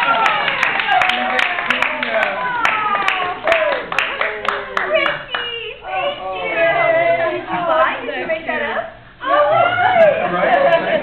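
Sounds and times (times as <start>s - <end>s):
people clapping: 0.0s - 5.8s.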